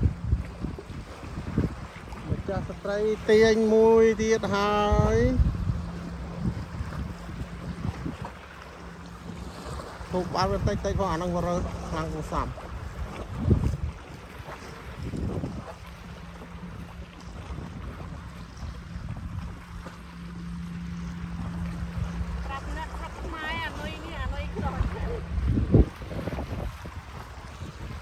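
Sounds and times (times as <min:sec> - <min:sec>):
steady low hum: 0:00.0 - 0:28.0
waves lapping against rocks: 0:00.0 - 0:28.0
wind buffeting microphone: 0:00.0 - 0:28.0.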